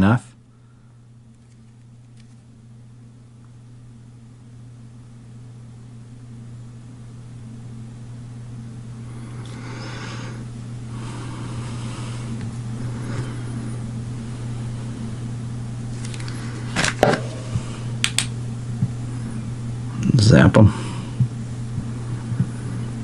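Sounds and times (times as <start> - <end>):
steady low hum: 0.0 - 23.0.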